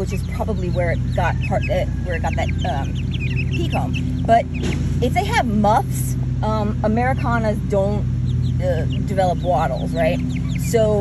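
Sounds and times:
chicks peeping: 0.0 - 11.0
steady low hum: 0.0 - 11.0.

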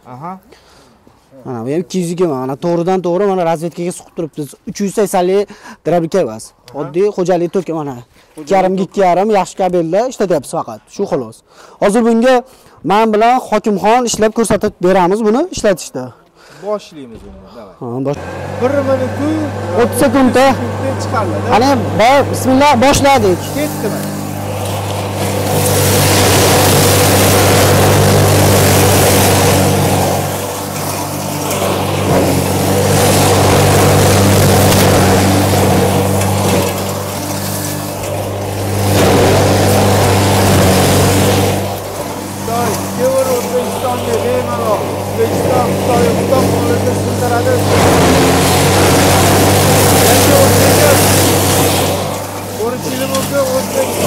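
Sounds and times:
crusher grinding straw: 18.1 - 54.0
motor hum: 18.2 - 54.0.

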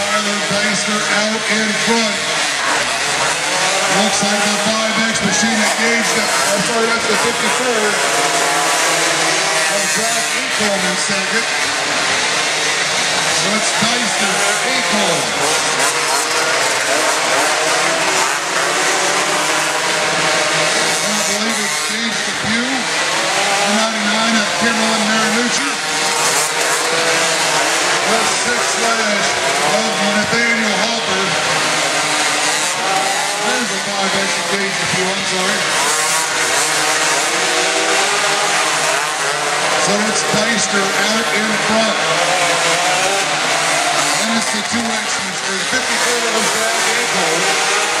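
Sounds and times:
quad engines racing: 0.0 - 48.0.

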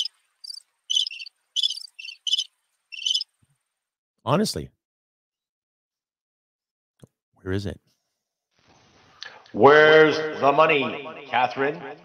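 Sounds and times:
crickets chirping: 0.0 - 3.3.

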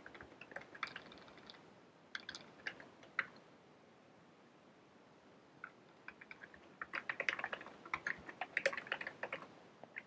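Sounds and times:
typing on computer keyboard: 0.0 - 3.4, 5.6 - 10.0.

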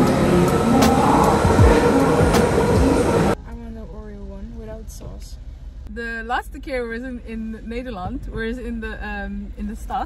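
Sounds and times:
underground train running into station: 0.0 - 3.4.

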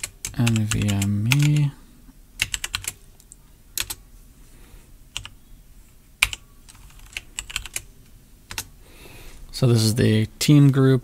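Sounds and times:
computer keyboard typing: 0.0 - 1.7, 2.4 - 4.0, 5.2 - 5.4, 6.2 - 7.9, 8.5 - 8.7.

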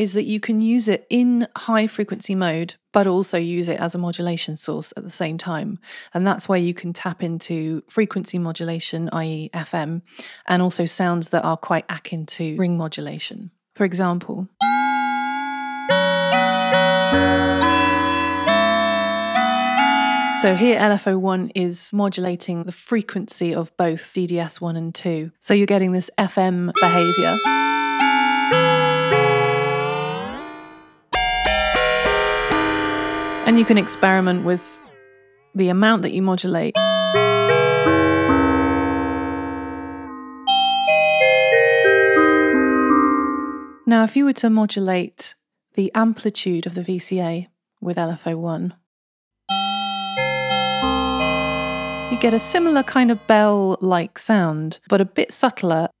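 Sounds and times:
synthesizer sustained notes: 14.9 - 20.8, 26.8 - 35.3, 37.1 - 40.5, 49.6 - 53.4
low synth tone: 26.8 - 35.3, 37.1 - 40.5, 49.5 - 53.4.

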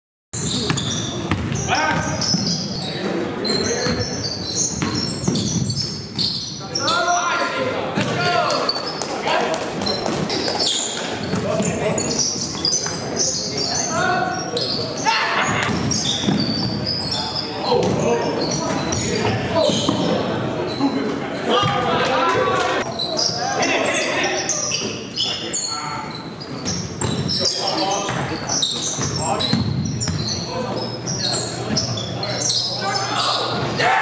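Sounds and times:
basketball bouncing on court: 0.4 - 2.6, 3.8 - 6.4, 9.9 - 11.8, 15.5 - 16.8, 28.0 - 30.4
players' indistinct voices: 0.4 - 34.0.

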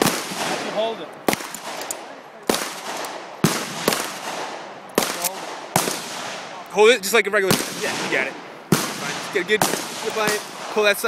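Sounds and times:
gunshots with echo: 0.0 - 6.6, 7.4 - 11.0.

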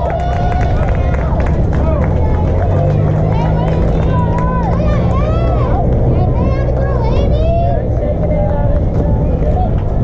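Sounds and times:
young players shouting: 0.0 - 8.0
wind rumble on microphone: 0.0 - 10.0.

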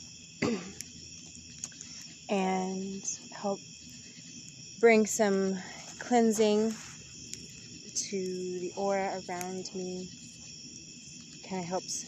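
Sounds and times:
crickets chirring: 0.0 - 12.0
woman coughing: 0.4 - 0.8.

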